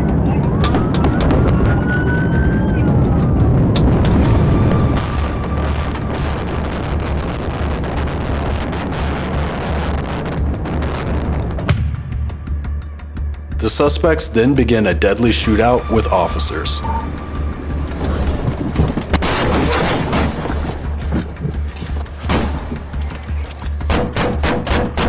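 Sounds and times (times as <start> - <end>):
police siren wailing: 0.0 - 7.4, 15.3 - 19.0.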